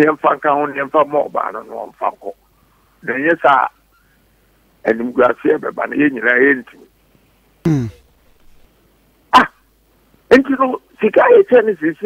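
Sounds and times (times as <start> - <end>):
man's loud vocal outburst: 7.7 - 8.6.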